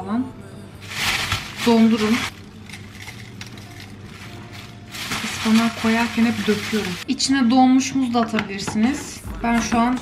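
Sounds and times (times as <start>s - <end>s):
plastic bag crinkling: 0.8s - 7.0s.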